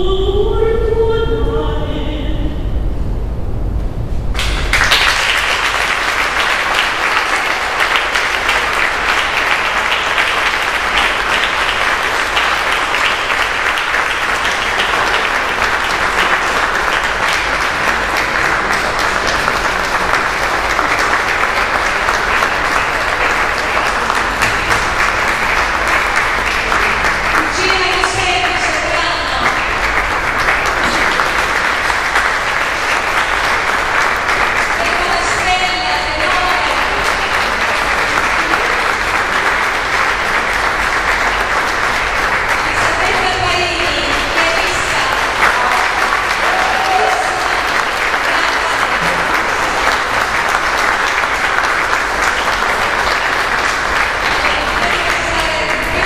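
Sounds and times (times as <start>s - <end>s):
person speaking: 0.0s - 2.6s
audience applauding: 4.4s - 56.0s.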